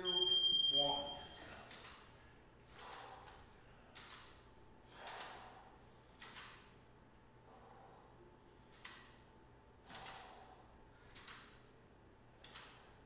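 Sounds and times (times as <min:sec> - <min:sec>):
high electronic timer beep: 0:00.0 - 0:01.4
rhythmic breaths: 0:00.0 - 0:13.0.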